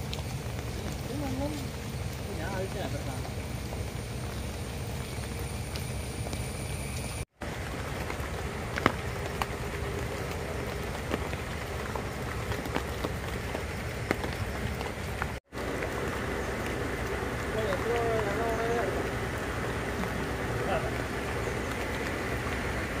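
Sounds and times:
heavy rain on river and leaves: 0:00.0 - 0:23.0.

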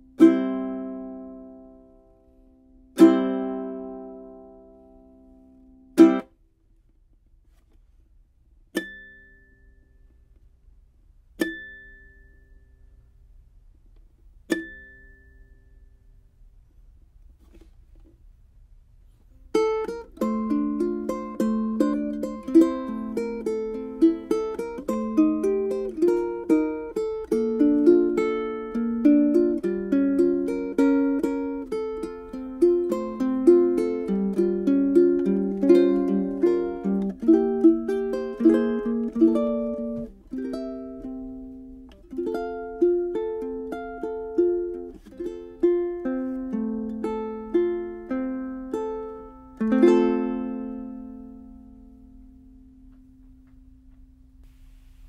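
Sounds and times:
fingerstyle ukulele melody: 0:00.0 - 0:06.4, 0:08.7 - 0:10.1, 0:11.4 - 0:13.0, 0:14.4 - 0:15.9, 0:19.5 - 0:54.1.

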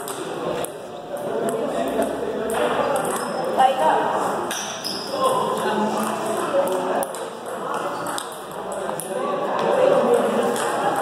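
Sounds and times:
indistinct chatter: 0:00.0 - 0:11.0
table tennis balls clicking: 0:06.4 - 0:09.2.

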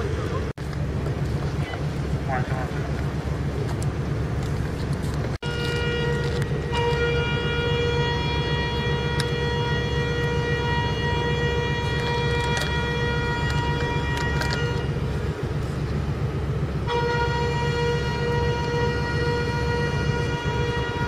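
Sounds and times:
diesel engine rumble: 0:00.0 - 0:21.0
ship's horn blast: 0:05.4 - 0:15.4, 0:16.7 - 0:21.0.

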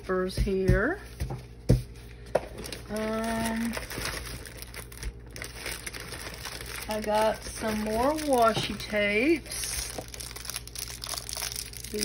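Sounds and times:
plastic packaging crinkling: 0:02.3 - 0:12.0.

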